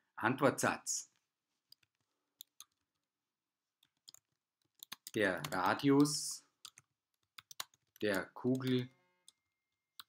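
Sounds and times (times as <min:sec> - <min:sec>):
computer mouse clicks: 0:03.8 - 0:09.4.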